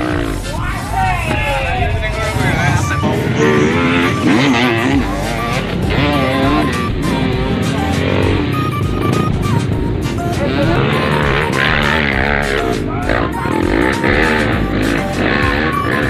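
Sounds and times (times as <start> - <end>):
dirt bike engines revving: 0.0 - 16.0
loud music with singing: 0.0 - 16.0.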